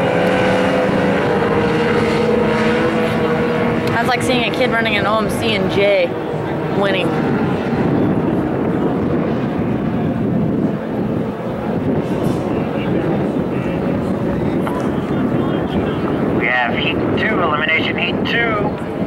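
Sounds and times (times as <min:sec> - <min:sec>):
distant outboard racing engines: 0:00.0 - 0:19.0
wind on microphone: 0:00.0 - 0:19.0.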